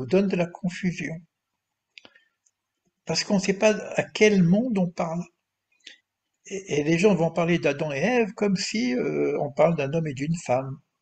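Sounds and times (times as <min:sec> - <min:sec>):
person speaking: 0:00.0 - 0:02.1, 0:03.0 - 0:11.0.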